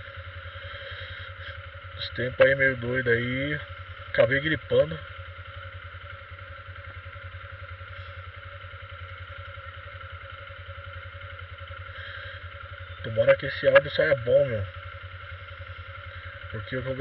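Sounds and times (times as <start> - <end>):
motorcycle engine idling: 0.0 - 17.0.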